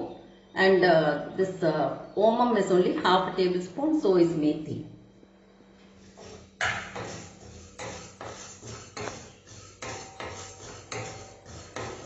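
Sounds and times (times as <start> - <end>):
wooden spatula knocking metal pan: 6.6 - 12.0.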